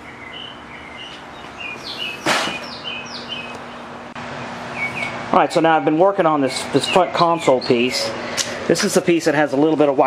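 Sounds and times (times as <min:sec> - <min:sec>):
small birds chirping: 0:00.0 - 0:04.1, 0:04.7 - 0:05.2, 0:06.5 - 0:08.0.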